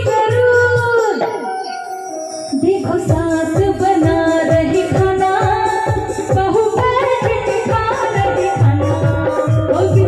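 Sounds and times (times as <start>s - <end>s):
dholak beat: 0.0s - 10.0s
electronic keyboard melody: 0.0s - 10.0s.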